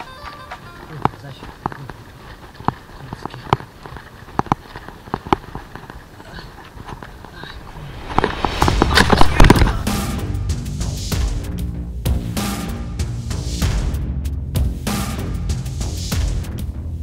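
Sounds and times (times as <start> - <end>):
stones knocking against bike: 0.0 - 6.0.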